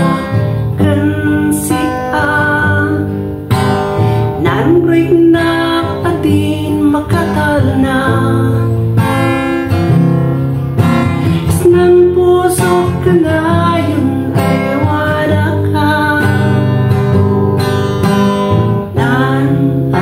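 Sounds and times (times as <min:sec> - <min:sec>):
woman singing: 0:00.0 - 0:09.6, 0:11.0 - 0:17.0, 0:18.5 - 0:20.0
acoustic guitar strumming: 0:00.0 - 0:20.0.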